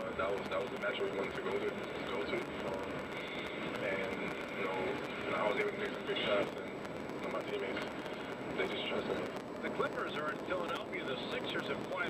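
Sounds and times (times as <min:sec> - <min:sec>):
low road hum: 0:00.0 - 0:12.0
man talking on radio: 0:00.0 - 0:12.0.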